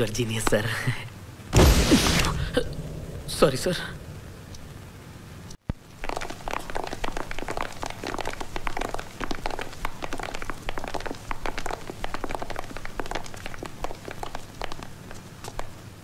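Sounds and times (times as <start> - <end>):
footsteps on polished floor: 6.0 - 15.8.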